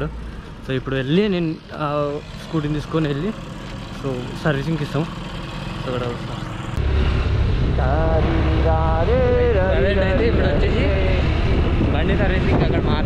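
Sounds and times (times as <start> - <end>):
motorcycle engine: 0.0 - 12.7
wind rumbling on microphone: 6.8 - 13.0.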